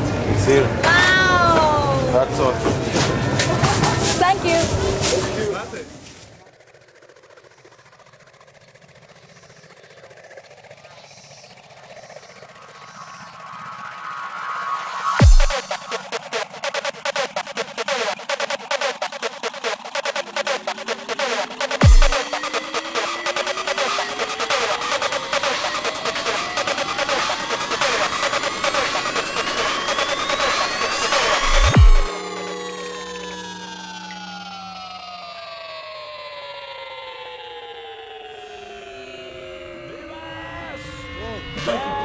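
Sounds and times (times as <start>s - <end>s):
psytrance electronic music: 5.4s - 42.0s.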